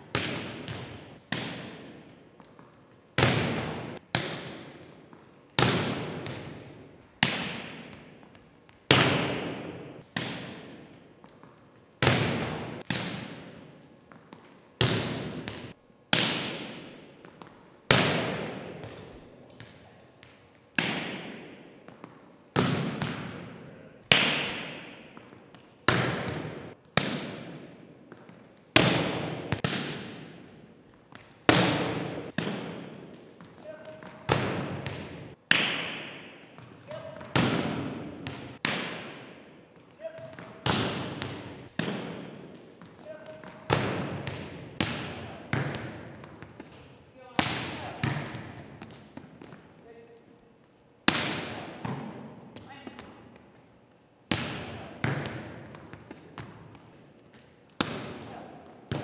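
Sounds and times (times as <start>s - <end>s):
volleyball smacks in gymnasium: 0.0s - 49.8s, 51.0s - 53.5s, 54.3s - 59.0s.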